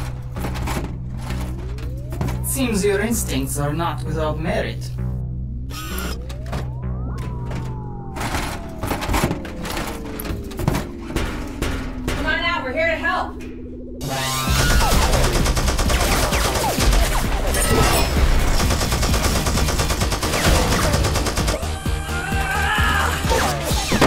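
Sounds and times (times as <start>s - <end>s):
low droning score: 0.0s - 21.3s
warbling electronic effect: 4.9s - 12.6s
electronic sweep: 13.8s - 18.3s
rapid gunfire effects: 14.1s - 21.8s.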